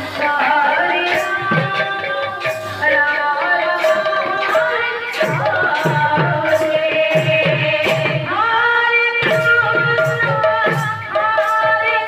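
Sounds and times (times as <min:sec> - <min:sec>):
voices singing held notes: 0:00.0 - 0:12.0
barrel drum strokes: 0:00.1 - 0:12.0.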